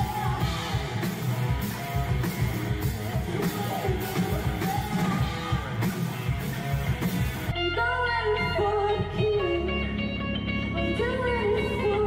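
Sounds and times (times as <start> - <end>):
distorted electric guitar: 0.0 - 12.0
drums: 0.0 - 12.0
electric guitar bending lead notes: 0.0 - 12.0
low bass notes: 0.0 - 12.0.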